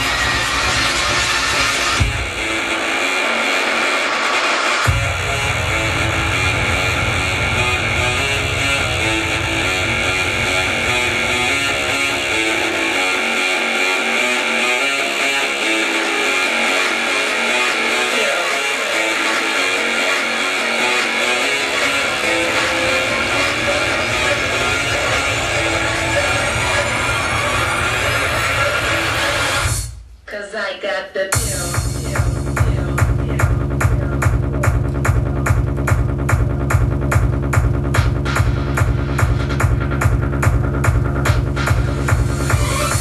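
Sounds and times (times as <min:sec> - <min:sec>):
psytrance music with rolling bass: 0:00.0 - 0:30.1, 0:31.3 - 0:43.0.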